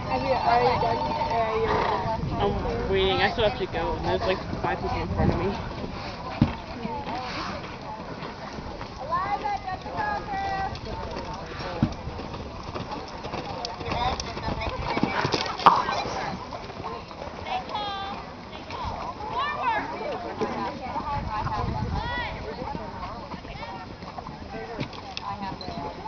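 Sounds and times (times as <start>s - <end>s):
horse hoofbeats on sand: 4.4s - 19.6s
people talking: 13.4s - 26.0s.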